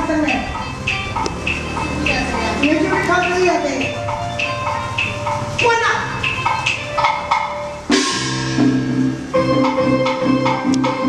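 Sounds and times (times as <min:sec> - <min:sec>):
sharp ringing percussion strikes: 0:00.2 - 0:10.2
loud cymbal crash: 0:07.2 - 0:09.5.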